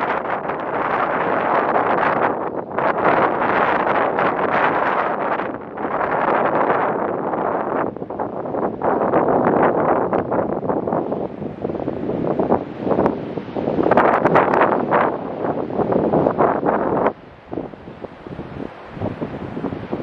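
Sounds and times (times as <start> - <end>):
heavy surf breaking: 0.0 - 20.0
wind buffeting microphone: 0.0 - 20.0.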